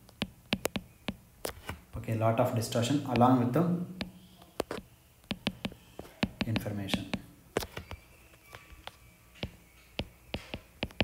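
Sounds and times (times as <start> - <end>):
stylus tapping on glass screen: 0.0 - 1.2, 4.0 - 8.0, 9.4 - 11.0.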